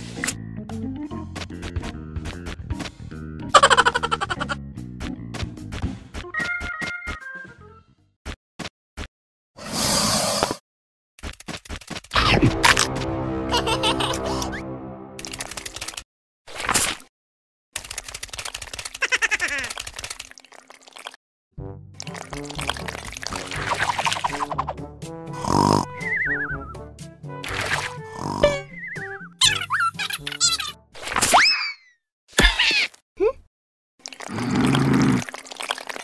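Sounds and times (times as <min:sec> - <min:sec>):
scurrying clicks sound effect: 0:15.2 - 0:16.0
liquid mud sloshing: 0:22.0 - 0:24.5, 0:34.1 - 0:36.0.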